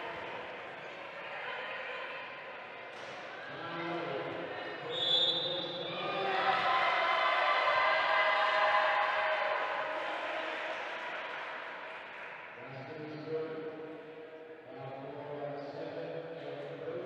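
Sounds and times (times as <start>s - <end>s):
spectators shouting and cheering: 0.0s - 12.6s
referee's whistle: 4.9s - 5.9s.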